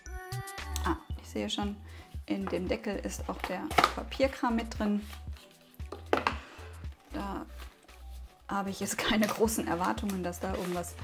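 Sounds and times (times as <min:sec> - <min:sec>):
background music with low bass: 0:00.0 - 0:11.0.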